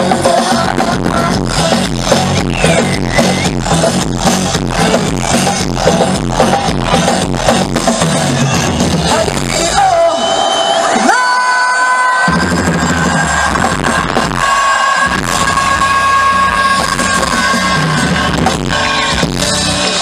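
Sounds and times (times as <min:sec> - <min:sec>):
live pop music over sound system: 0:00.0 - 0:20.0.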